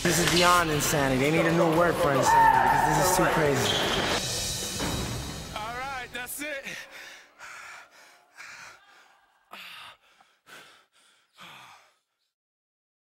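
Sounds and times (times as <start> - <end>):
person breathing hard and gasping: 6.6 - 12.4.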